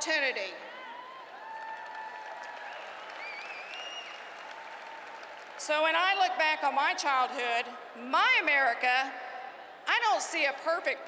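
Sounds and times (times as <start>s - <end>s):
audience applauding: 1.0s - 6.1s.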